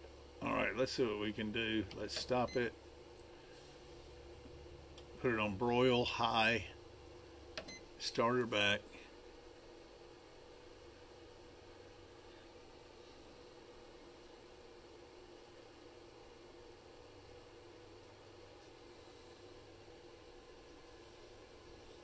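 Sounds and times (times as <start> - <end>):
faint air fryer hum: 0.0 - 22.0.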